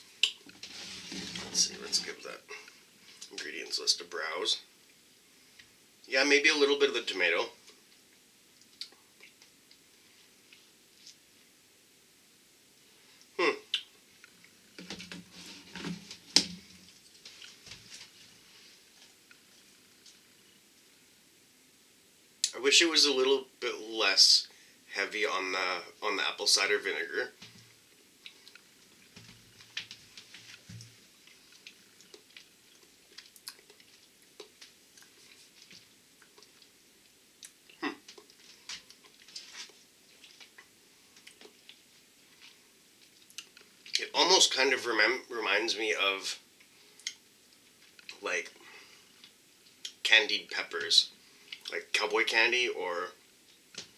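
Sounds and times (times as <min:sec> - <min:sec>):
lip smacks and tongue clicks: 0:30.8 - 0:35.3, 0:43.0 - 0:44.0.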